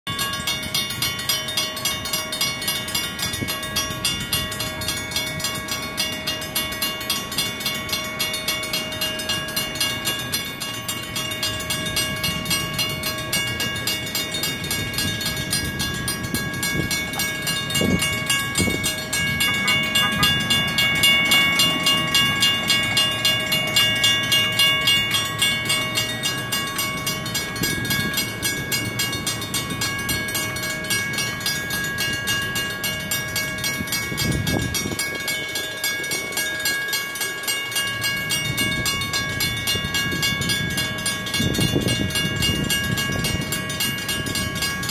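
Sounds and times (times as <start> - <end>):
railroad crossing bells ringing: 0.1 - 44.9
road traffic passing: 1.4 - 29.0.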